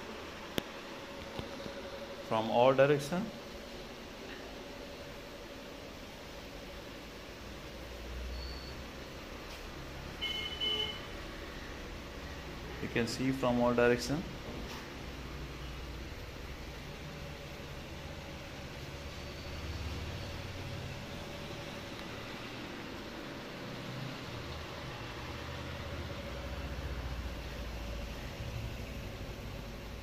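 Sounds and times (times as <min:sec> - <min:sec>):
faint constant hum: 0:00.0 - 0:30.0.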